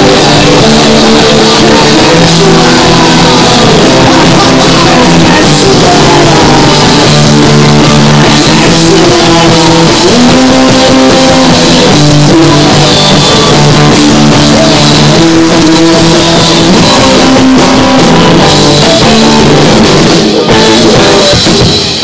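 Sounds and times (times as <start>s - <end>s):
drum kit: 0.0s - 22.0s
electric bass: 0.0s - 22.0s
electric guitars: 0.0s - 22.0s.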